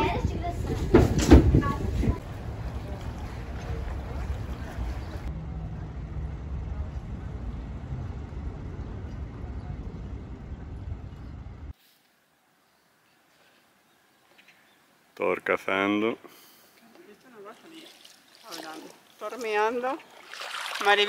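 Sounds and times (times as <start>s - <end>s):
wind noise on microphone: 0.0s - 5.3s
low steady engine rumble: 1.6s - 11.8s.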